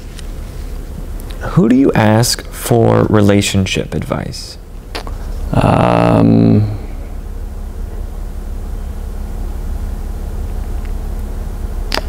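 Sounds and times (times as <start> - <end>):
faint hum: 0.0 - 12.0
low rumble: 4.3 - 12.0.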